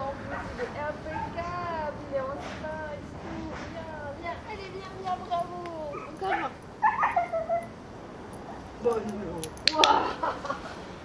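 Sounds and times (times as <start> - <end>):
puppy whining yelps: 5.9 - 7.8.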